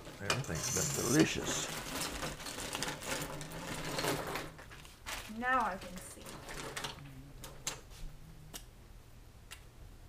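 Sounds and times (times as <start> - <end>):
plastic bag crinkling: 0.7 - 7.0.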